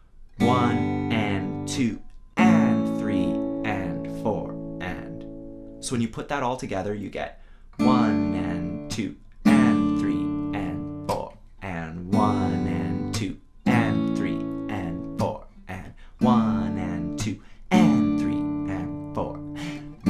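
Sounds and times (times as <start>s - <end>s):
acoustic guitar chords ringing: 0.4s - 6.0s, 7.8s - 11.3s, 12.0s - 15.6s, 16.2s - 20.0s.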